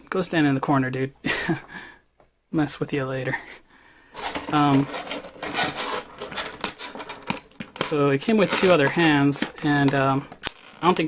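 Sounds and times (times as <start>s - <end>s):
plastic packaging crackling: 4.2s - 11.0s.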